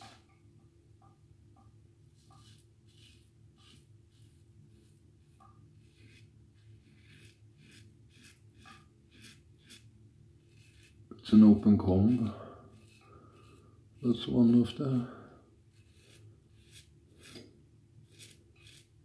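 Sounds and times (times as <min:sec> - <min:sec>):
razor scraping stubble: 0:02.2 - 0:15.0, 0:15.7 - 0:19.0.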